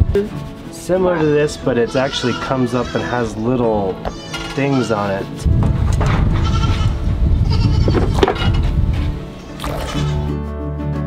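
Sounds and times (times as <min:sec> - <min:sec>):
background music: 0:00.0 - 0:11.0
goats bleating: 0:01.1 - 0:05.2, 0:06.4 - 0:08.6, 0:09.5 - 0:10.3.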